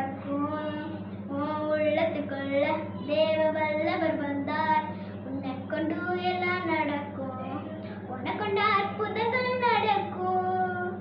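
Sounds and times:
girl singing: 0.0s - 11.0s
steady low hum: 0.0s - 11.0s.

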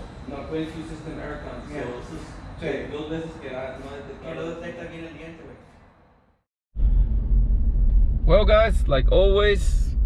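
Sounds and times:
road and engine rumble: 0.0s - 5.7s.

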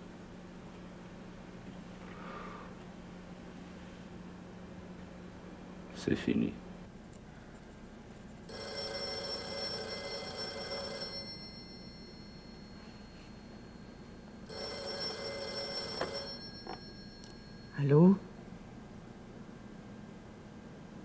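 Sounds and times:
telephone bell ringing: 8.5s - 18.4s.

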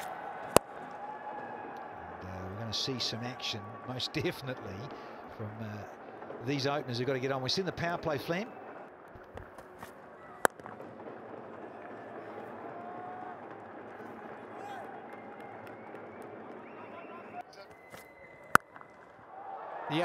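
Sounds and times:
stadium crowd noise: 0.0s - 20.0s
bat hitting ball: 9.2s - 10.9s.

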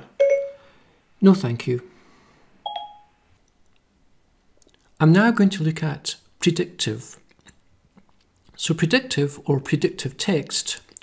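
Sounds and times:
electronic chime beep: 0.2s - 0.7s, 2.7s - 3.2s.

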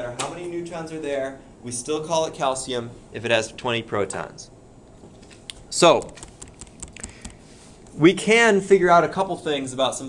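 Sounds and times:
light irregular computer clicks: 5.0s - 7.4s.

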